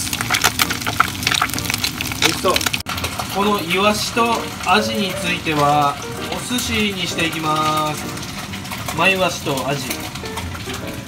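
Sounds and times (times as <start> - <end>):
fish deep-frying in hot oil: 0.0 - 11.0.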